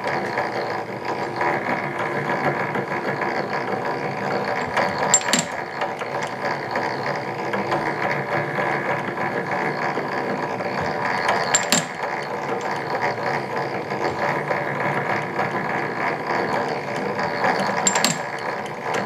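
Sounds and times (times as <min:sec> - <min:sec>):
clattering chain and gears: 0:00.0 - 0:19.0
sharp metallic clicks: 0:04.5 - 0:07.8, 0:10.8 - 0:15.0, 0:16.4 - 0:19.0.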